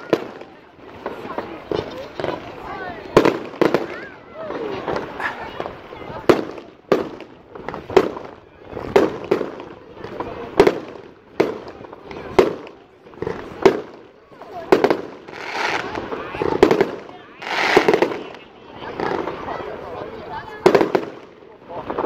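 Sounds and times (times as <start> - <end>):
fireworks bursting with loud bangs: 0.0 - 22.0
fireworks hissing crackle: 4.6 - 22.0.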